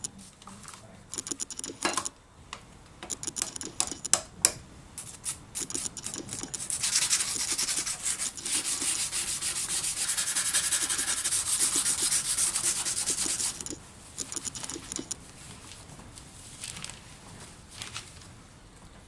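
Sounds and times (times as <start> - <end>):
steel part scrubbed by hand: 5.0 - 13.8.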